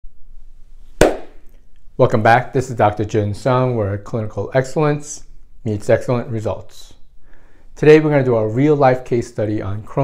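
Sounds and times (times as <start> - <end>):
hand clap with echo: 1.0 - 1.4.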